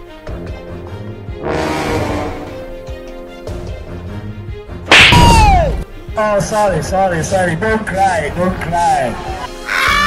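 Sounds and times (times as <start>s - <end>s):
background music with held tones: 0.0s - 10.0s
loud slap across the face: 4.9s - 5.7s.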